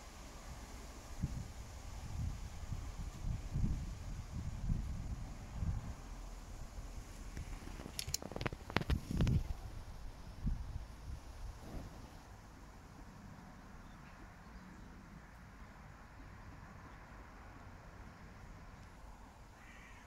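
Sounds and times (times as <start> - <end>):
wind buffeting microphone: 1.1 - 12.4.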